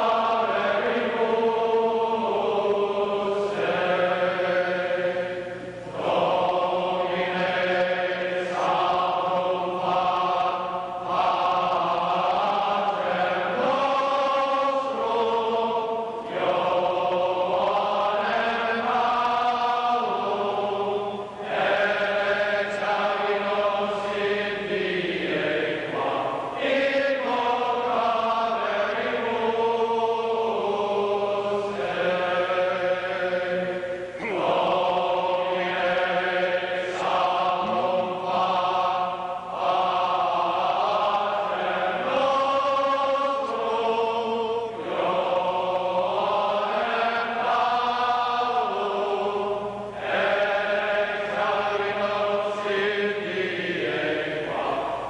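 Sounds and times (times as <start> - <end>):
crowd singing in unison: 0.0 - 55.0.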